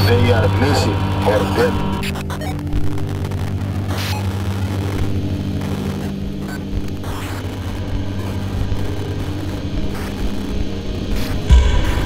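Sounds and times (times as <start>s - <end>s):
dark ambient drone: 0.0s - 12.0s.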